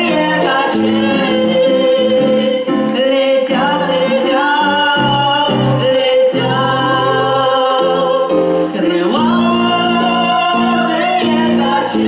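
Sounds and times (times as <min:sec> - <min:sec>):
digital piano accompaniment: 0:00.0 - 0:12.0
woman and boy singing a duet: 0:00.0 - 0:12.0.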